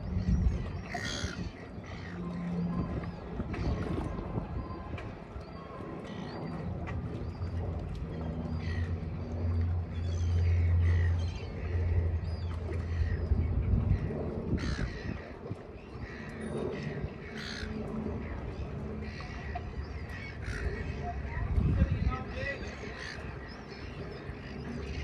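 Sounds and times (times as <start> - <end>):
birds calling: 0.0 - 4.0, 5.6 - 25.0
steady low hum: 0.0 - 25.0.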